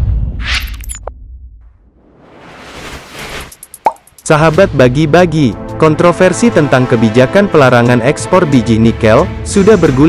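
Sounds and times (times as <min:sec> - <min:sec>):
whoosh: 0:01.6 - 0:03.6.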